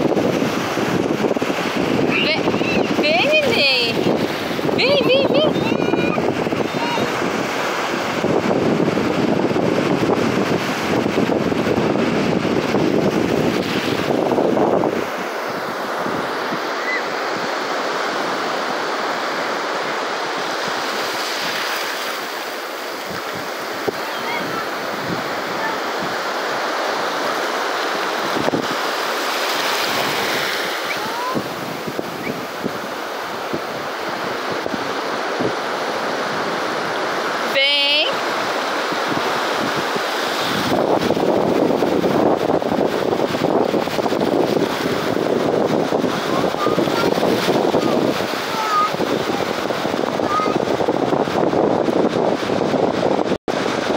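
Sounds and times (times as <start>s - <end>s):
waves washing on beach: 0.0s - 53.9s
wind on microphone: 0.0s - 53.9s.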